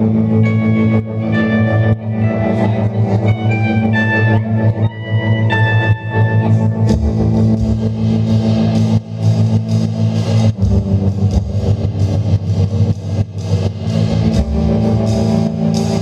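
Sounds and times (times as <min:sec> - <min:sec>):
electric guitar: 0:00.0 - 0:16.0
drum kit with cymbals: 0:06.6 - 0:16.0.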